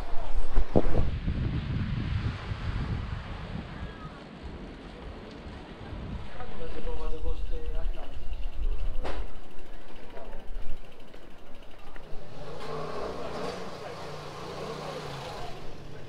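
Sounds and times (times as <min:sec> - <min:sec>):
wind buffeting microphone: 0:00.0 - 0:11.8
people's voices: 0:05.8 - 0:16.0
bicycle rumbling over stone paving: 0:06.2 - 0:16.0.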